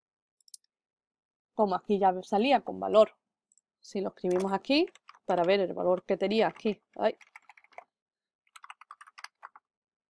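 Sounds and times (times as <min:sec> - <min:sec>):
keyboard keystrokes: 0:04.3 - 0:07.8, 0:08.5 - 0:09.6.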